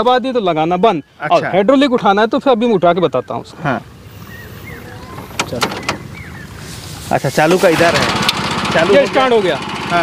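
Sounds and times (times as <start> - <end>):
engine idling: 3.7 - 10.0.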